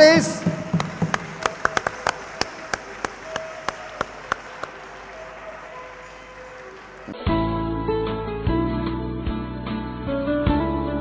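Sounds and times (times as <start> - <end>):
people clapping: 0.0 - 7.3.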